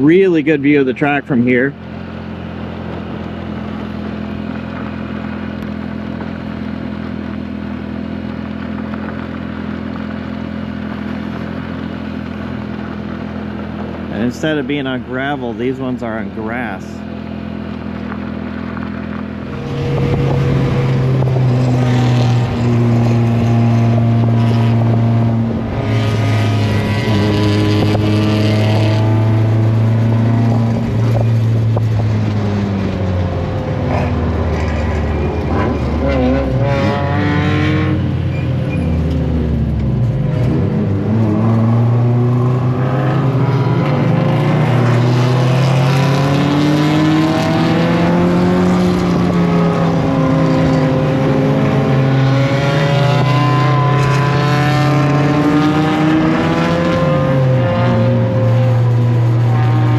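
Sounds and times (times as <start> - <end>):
race car engine revving: 0.0 - 59.9.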